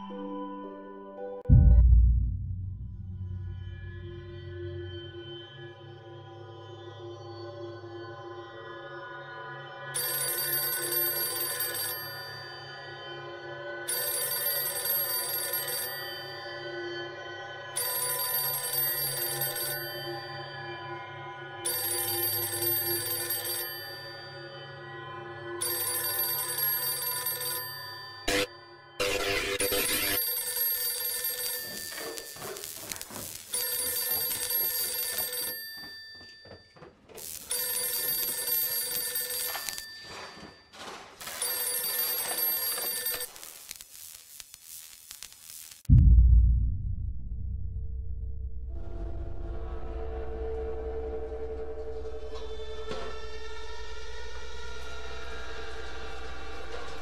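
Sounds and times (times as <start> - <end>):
telephone bell ringing: 10.0 - 13.2, 13.8 - 17.0, 17.7 - 21.0, 21.6 - 43.4
ambient music drone: 47.7 - 57.0.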